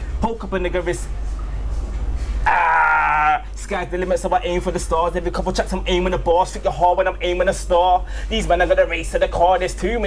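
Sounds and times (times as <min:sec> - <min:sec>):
low steady rumble: 0:00.0 - 0:10.0
man holding a pitched vocal sound: 0:02.5 - 0:03.6.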